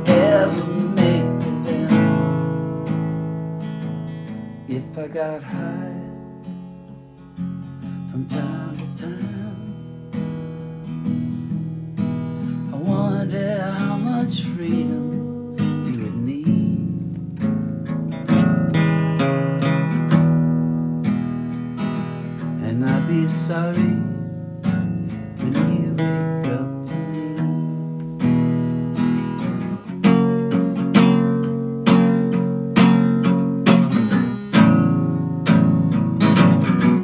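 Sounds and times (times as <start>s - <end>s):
acoustic guitar strummed and picked: 0.0s - 37.0s.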